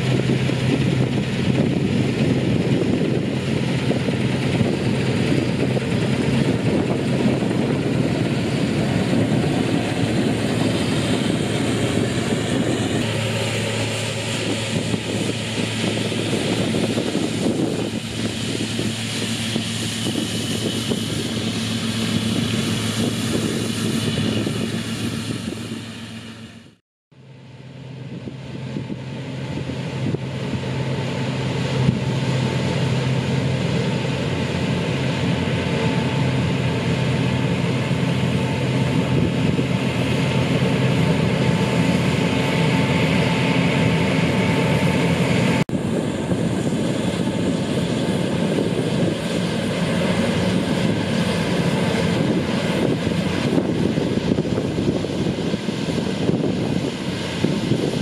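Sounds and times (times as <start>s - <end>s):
combine harvester engine drone: 0.0s - 58.0s.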